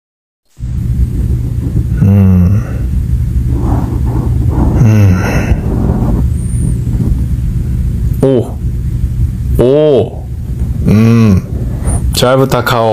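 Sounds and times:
steady low rumble: 0.5 - 12.9
man making wordless sounds: 8.1 - 8.6, 9.6 - 12.9.

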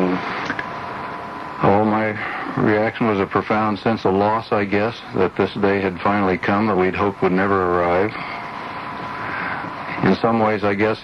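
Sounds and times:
background hiss: 0.0 - 11.0
faint steady tone: 0.0 - 11.0
man speaking on radio: 1.6 - 8.4, 9.9 - 11.0.

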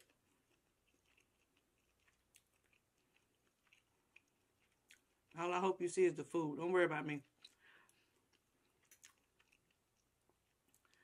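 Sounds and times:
quiet chewing: 0.0 - 5.6, 7.1 - 11.0.

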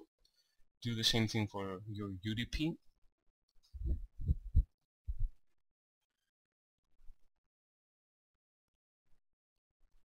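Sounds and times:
dull low thumps: 3.8 - 5.4.

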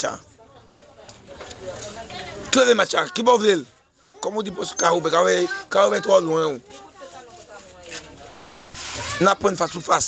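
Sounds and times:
faint indistinct voices: 0.0 - 10.0
street noise: 0.0 - 10.0.

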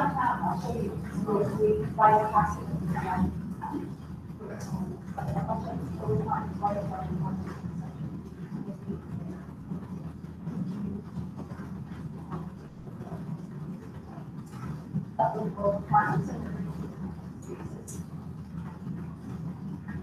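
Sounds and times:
faint voices: 0.0 - 9.8, 12.9 - 18.2
stationary bicycle trainer rumble: 0.0 - 20.0.

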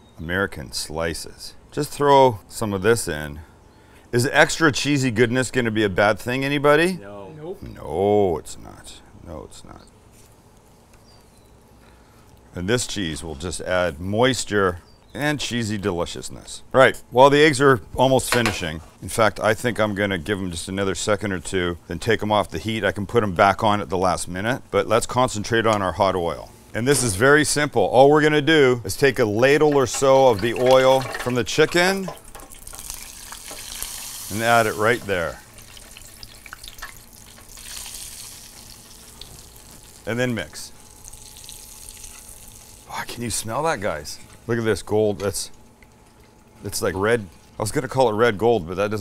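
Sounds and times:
frying oil sizzling: 29.2 - 43.0.

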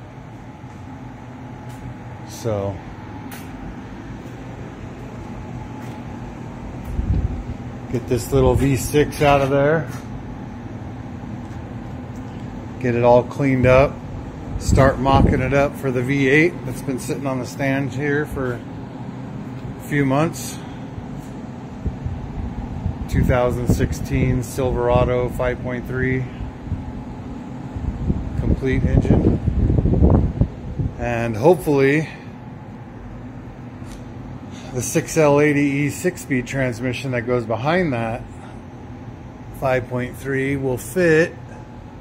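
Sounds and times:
cooler fan running: 0.0 - 42.0
machine hum: 0.0 - 42.0.

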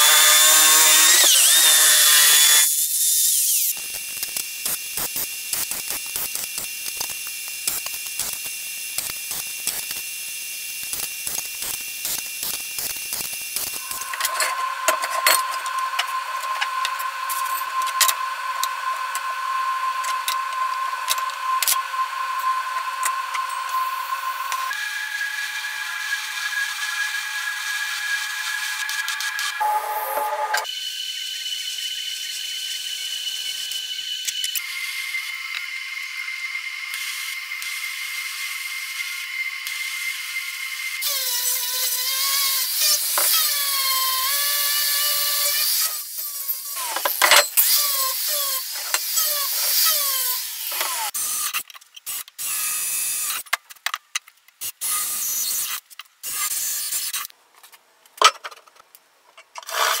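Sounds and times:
angle grinder on steel: 0.0 - 3.9, 10.8 - 30.7, 41.0 - 51.6
welding arc hissing whine: 0.0 - 31.9.

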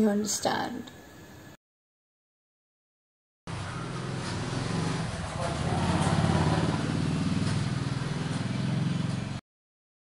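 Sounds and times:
vehicle engine hum: 3.5 - 9.4.

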